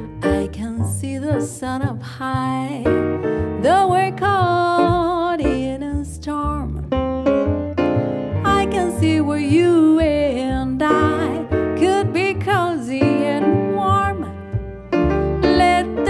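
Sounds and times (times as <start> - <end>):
woman singing: 0.0 - 3.0, 3.6 - 6.9, 8.4 - 14.4, 15.4 - 16.0
piano: 0.0 - 16.0
plucked double bass: 0.0 - 16.0.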